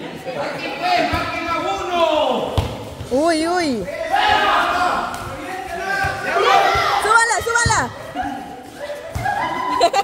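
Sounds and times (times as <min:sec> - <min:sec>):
people shouting long calls: 0:03.8 - 0:10.0.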